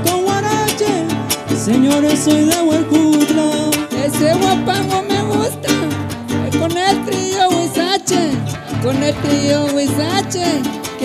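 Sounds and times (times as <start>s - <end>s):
strummed guitars: 0.0s - 11.0s
person singing verses: 1.7s - 6.0s.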